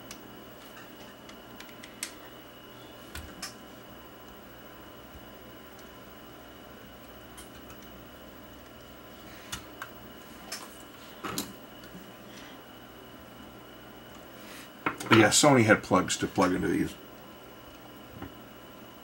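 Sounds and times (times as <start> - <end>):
faint steady hum: 0.0 - 19.0.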